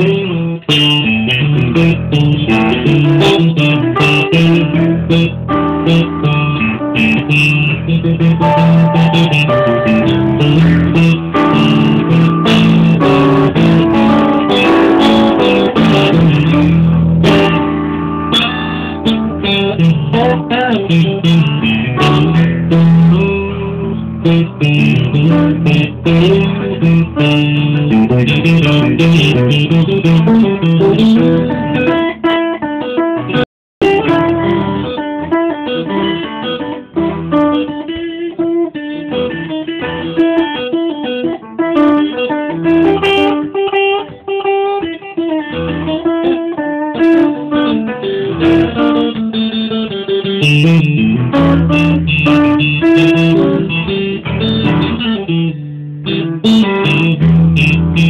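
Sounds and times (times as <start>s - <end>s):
upright piano: 0.0s - 44.0s, 45.9s - 58.0s
electric guitar: 0.0s - 58.0s.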